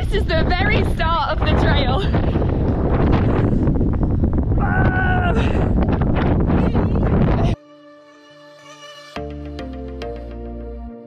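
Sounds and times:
wind buffeting microphone: 0.0s - 7.6s.

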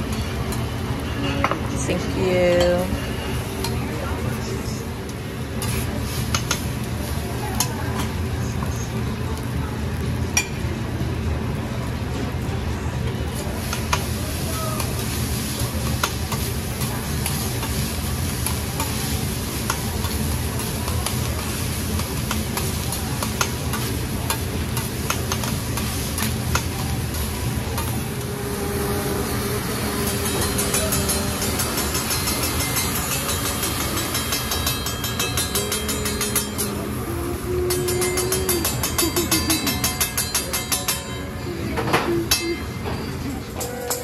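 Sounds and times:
food sizzling on a grill: 0.0s - 44.0s
metal spatulas scraping hot plate: 19.6s - 36.8s.

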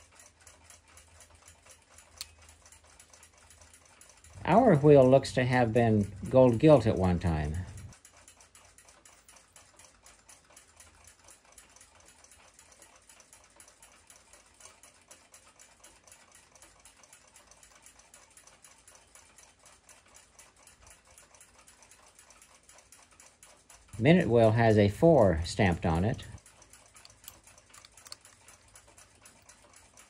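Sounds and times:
faint fast ticking: 0.0s - 30.0s.

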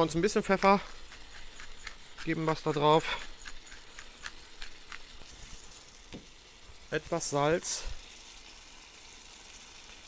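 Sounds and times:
pepper mill grinding: 0.0s - 6.1s
food sizzling in pan: 0.0s - 10.0s.

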